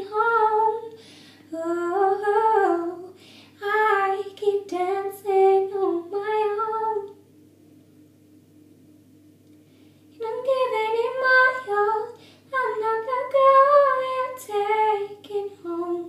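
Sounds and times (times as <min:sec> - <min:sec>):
woman singing slow melody: 0:00.0 - 0:07.2, 0:10.1 - 0:16.0
faint low hum: 0:00.0 - 0:16.0.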